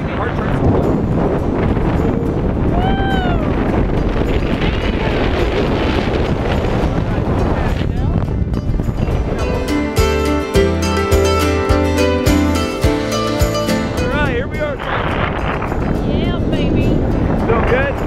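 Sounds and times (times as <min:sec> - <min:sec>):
wind buffeting microphone: 0:00.0 - 0:18.0
music: 0:00.3 - 0:18.0.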